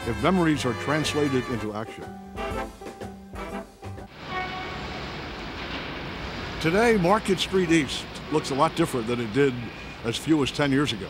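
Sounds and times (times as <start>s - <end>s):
city traffic rumble and hiss: 0.0s - 11.0s
faint steady tones: 6.6s - 11.0s.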